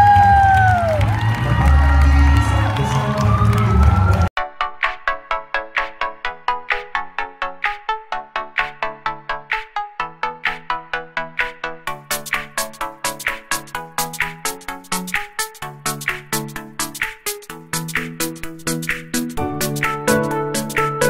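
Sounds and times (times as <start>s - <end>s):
crowd cheering: 0.0s - 4.3s
person whooping: 0.0s - 4.3s
bass-heavy hall music: 0.0s - 21.0s
electronic track of plucked notes: 4.6s - 21.0s.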